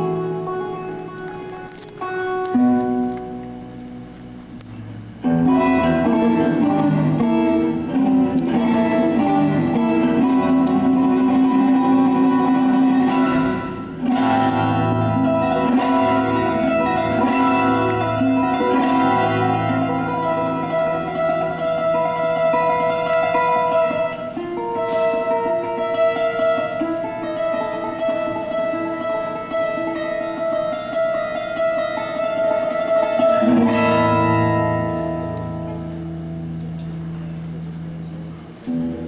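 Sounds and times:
harp guitar fingerpicking: 0.0s - 39.0s.

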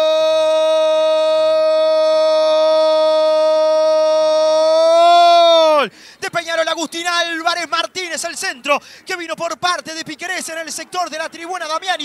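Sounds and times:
commentator's long goal cry: 0.0s - 5.9s
rapid speech: 6.2s - 12.0s.

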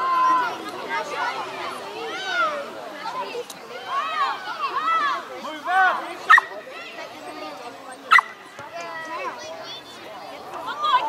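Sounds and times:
voices calling out: 0.0s - 11.0s
dog barking: 6.3s - 6.5s, 8.1s - 8.3s.

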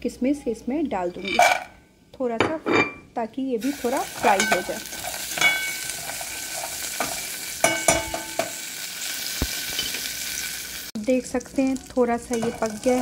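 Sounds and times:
spices sizzling in hot oil: 3.6s - 13.0s.

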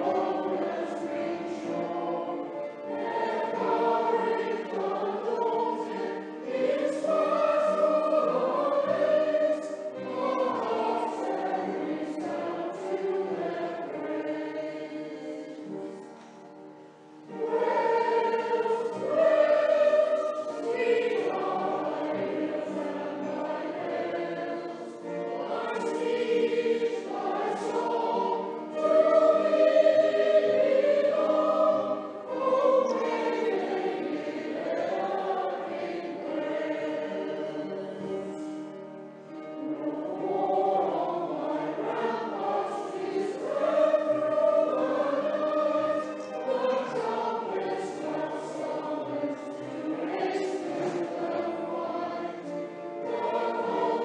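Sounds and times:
mixed choir singing: 0.0s - 16.6s, 17.2s - 54.0s.

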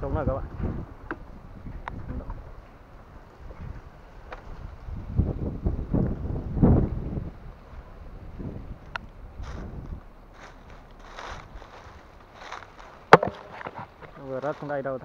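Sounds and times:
dry palm fronds rustling: 0.0s - 15.0s
wind buffeting microphone: 0.0s - 15.0s.

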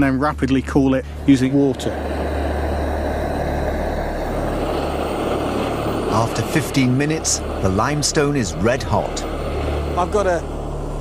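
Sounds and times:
blowtorch flame rushing: 0.7s - 11.0s.

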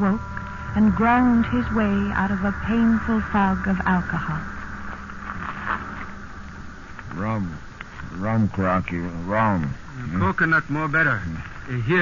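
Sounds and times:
low mains hum: 0.0s - 12.0s
steady hiss: 0.0s - 12.0s.

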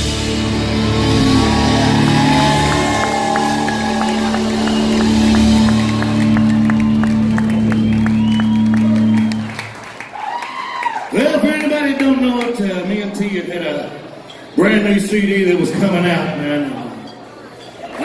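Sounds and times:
country rock band chord: 0.0s - 7.7s
crowd clapping and cheering: 0.0s - 12.7s.

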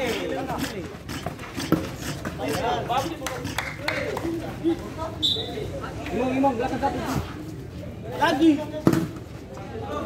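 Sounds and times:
feet on hard dirt: 0.0s - 5.0s.

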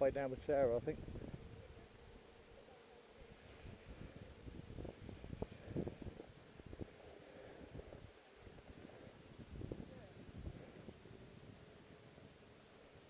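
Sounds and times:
wind buffeting microphone: 3.5s - 7.0s, 7.6s - 11.8s.

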